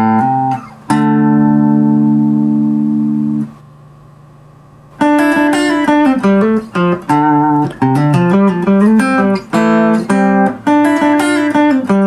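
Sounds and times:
fast picked guitar notes: 0.0s - 3.6s, 5.0s - 12.0s
clean electric guitar: 0.0s - 3.7s, 5.0s - 12.0s.

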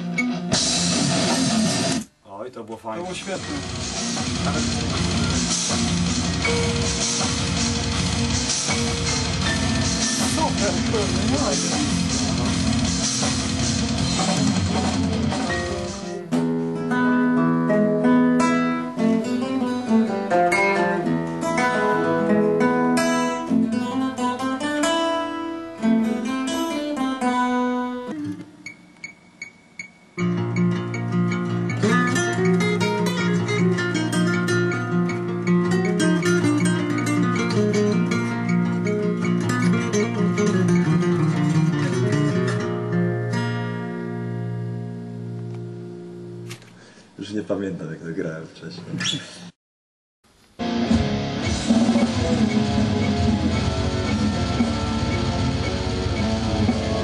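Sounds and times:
acoustic guitar picking and strumming: 0.0s - 2.1s, 3.0s - 47.0s, 50.6s - 57.0s
full band with drums: 3.3s - 15.9s, 50.9s - 57.0s.

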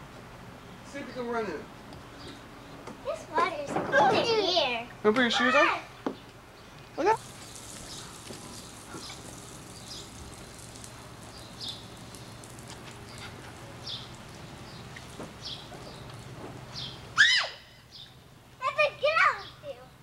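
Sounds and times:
child shrieking: 5.3s - 5.8s, 17.2s - 17.7s
water spraying from sprinkler: 7.0s - 17.2s.

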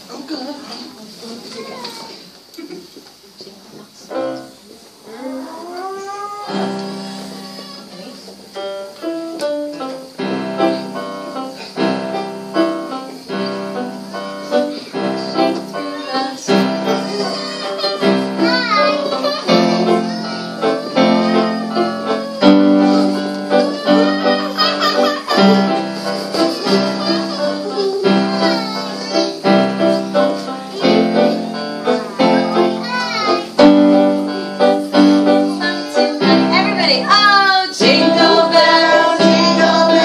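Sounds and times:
keyboard piano chords: 4.1s - 40.0s
person singing: 15.2s - 25.6s, 35.0s - 40.0s.

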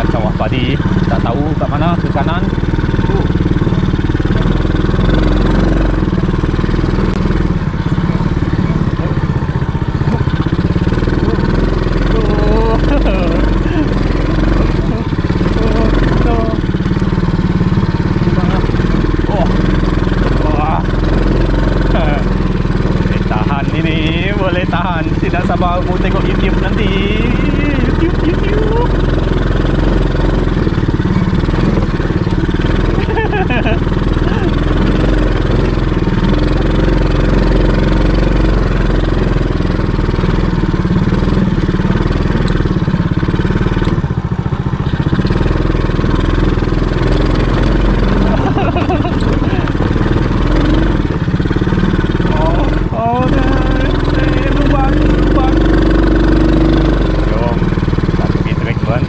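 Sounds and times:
atv engine running: 0.0s - 59.0s.

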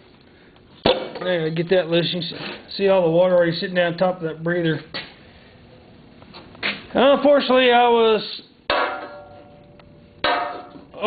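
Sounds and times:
metal housing clanking: 10.2s - 11.0s.

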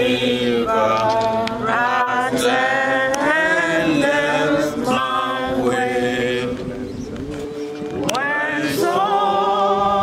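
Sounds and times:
group singing long sliding notes: 0.0s - 10.0s.

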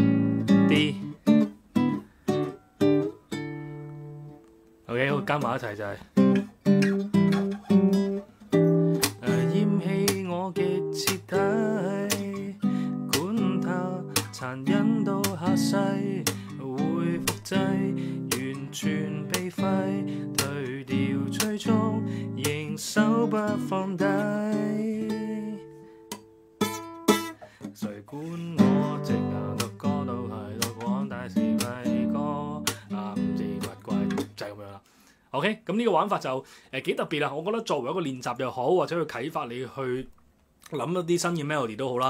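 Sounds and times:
classical guitar playing: 0.0s - 34.4s
person singing softly: 9.1s - 25.8s, 27.8s - 34.4s.

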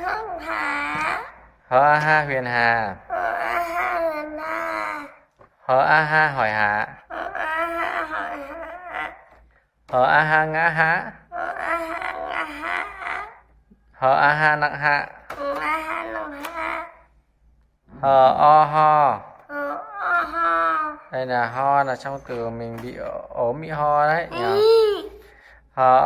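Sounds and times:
voices sounding out syllables: 24.1s - 25.1s.

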